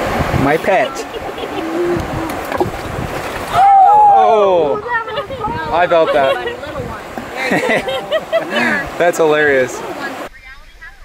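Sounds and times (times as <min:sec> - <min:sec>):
wind on microphone: 0:00.0 - 0:09.0
stream water running over rocks: 0:00.0 - 0:10.3.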